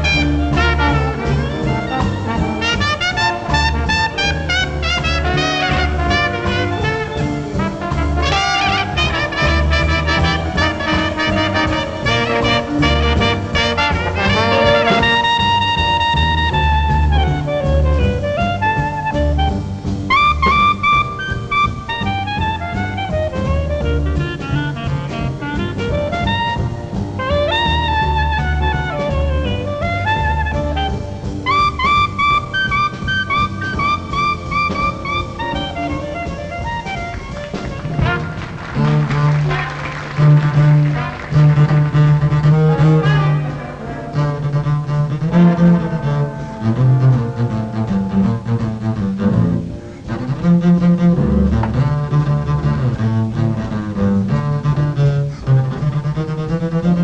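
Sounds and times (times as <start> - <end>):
bowed double bass: 0.0 - 57.0
jazz band playing slow blues: 0.0 - 57.0.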